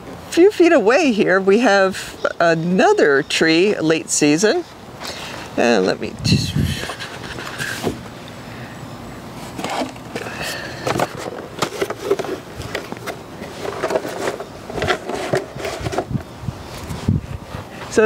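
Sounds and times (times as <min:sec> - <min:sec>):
rustling of handled things: 0:05.0 - 0:08.2, 0:09.4 - 0:18.0.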